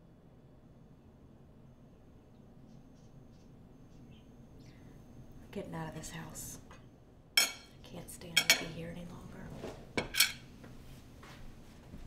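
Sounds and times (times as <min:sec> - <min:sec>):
dishes and cutlery clinking: 0:07.4 - 0:07.8, 0:08.4 - 0:08.8, 0:10.0 - 0:10.5.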